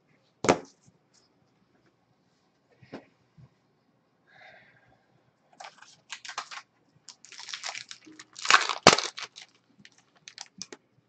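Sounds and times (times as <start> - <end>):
cards rustling and crinkling: 5.6 - 10.8.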